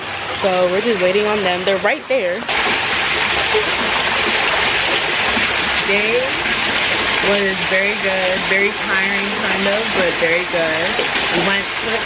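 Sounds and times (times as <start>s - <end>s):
waterfall splashing into hot tub: 0.0s - 12.0s.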